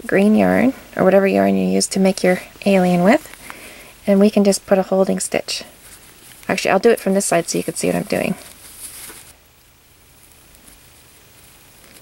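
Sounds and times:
low steady hiss: 0.0 - 12.0
yarn rustling: 1.4 - 9.4.

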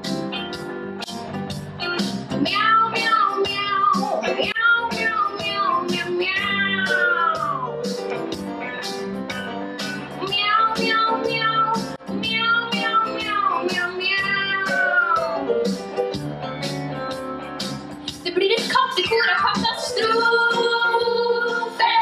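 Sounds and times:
live band playing: 0.0 - 21.9
young singers meowing glides: 2.5 - 7.8.

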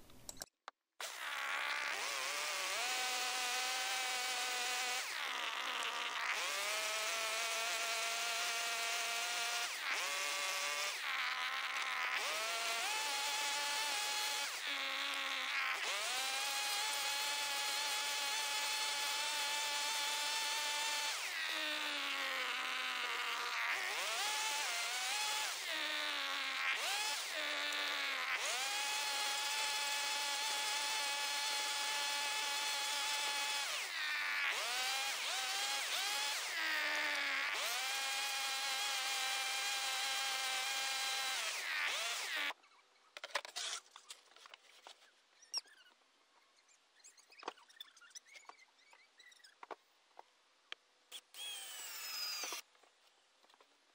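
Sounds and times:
chainsaw cutting wood: 1.0 - 42.6, 51.1 - 52.7.

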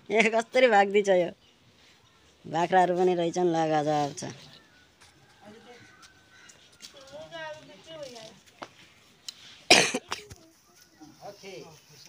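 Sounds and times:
loud sharp cough: 9.7 - 10.3.

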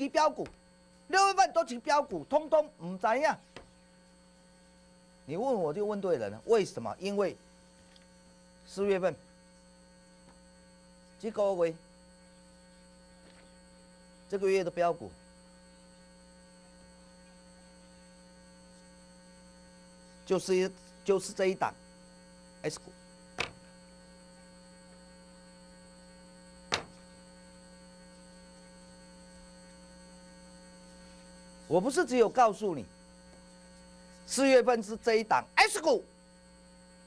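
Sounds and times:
man speaking: 0.0 - 0.5, 1.1 - 3.4, 5.3 - 7.4, 8.7 - 9.2, 11.2 - 11.8, 14.3 - 15.2, 20.3 - 21.8, 22.6 - 23.0, 31.7 - 32.9, 34.3 - 36.1
steady electrical hum: 0.0 - 37.0.

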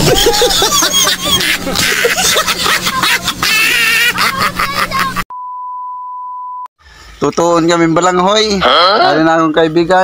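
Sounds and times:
censor bleep tone: 5.3 - 6.7.

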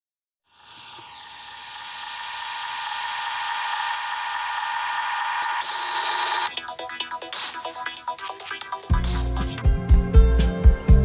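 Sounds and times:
electronic hissing swell with tone: 0.5 - 6.6
falling electronic sweep: 0.5 - 8.6.

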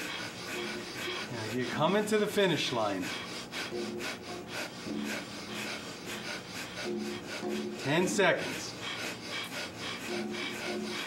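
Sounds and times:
people breathing rapidly: 0.0 - 11.0.

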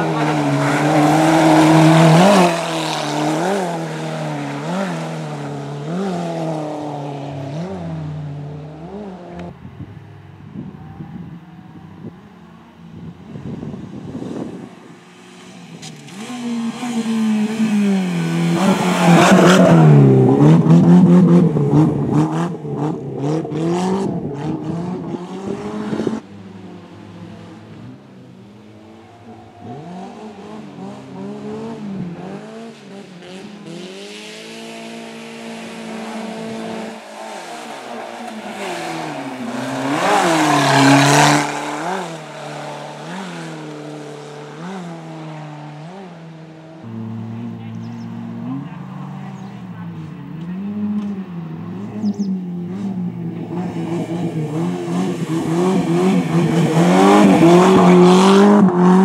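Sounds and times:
car engine revving hard: 15.8 - 26.2, 29.2 - 46.2, 49.9 - 59.0.

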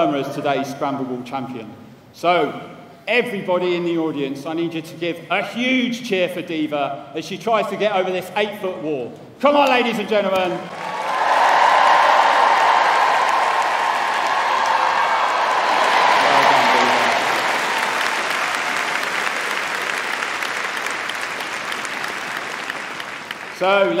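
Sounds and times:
crowd cheering and applauding: 10.7 - 24.0.

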